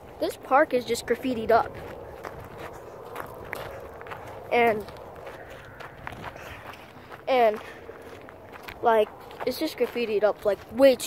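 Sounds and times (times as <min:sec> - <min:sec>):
footsteps on outdoor ground: 0:00.0 - 0:11.0.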